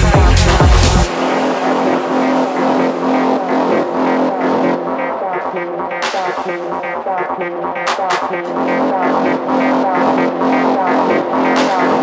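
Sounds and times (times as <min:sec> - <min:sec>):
noisy electronic texture: 0:00.0 - 0:12.0
held synth note: 0:01.1 - 0:06.0.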